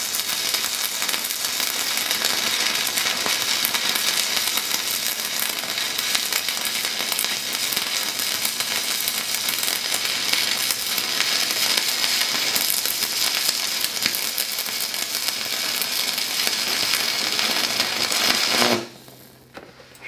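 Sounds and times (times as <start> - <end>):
welding arc crackling sizzle: 0.0 - 20.0.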